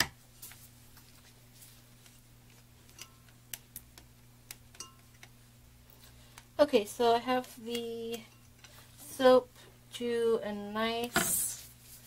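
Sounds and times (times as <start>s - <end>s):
utensils clinking against mixing bowl: 4.7s - 5.2s.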